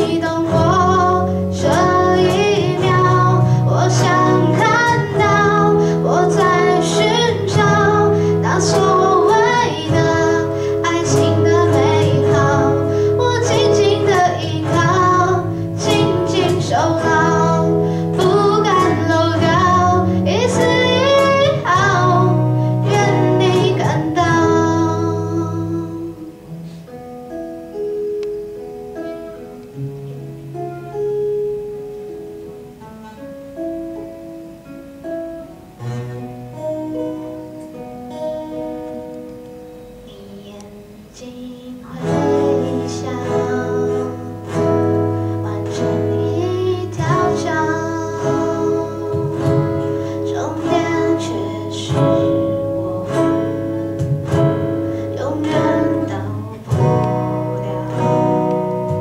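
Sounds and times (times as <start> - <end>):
woman singing pop song: 0.0 - 26.5, 40.1 - 58.9
bass: 0.0 - 26.9, 42.0 - 59.0
acoustic guitar chords: 0.0 - 59.0
cajon: 52.0 - 55.9.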